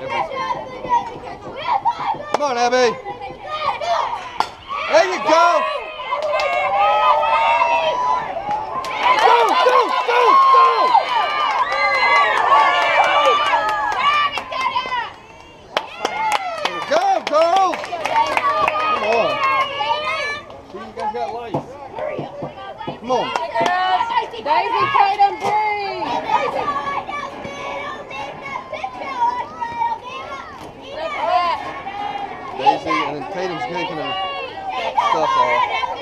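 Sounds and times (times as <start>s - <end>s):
girls chanting and cheering: 0.0s - 16.6s, 22.0s - 36.0s.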